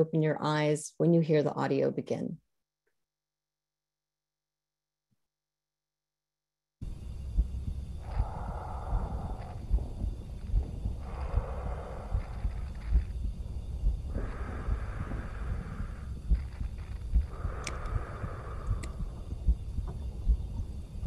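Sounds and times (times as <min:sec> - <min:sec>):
heartbeat thumps: 0:06.8 - 0:21.0
soft hiss: 0:06.8 - 0:21.0
steady low throb: 0:06.8 - 0:21.0.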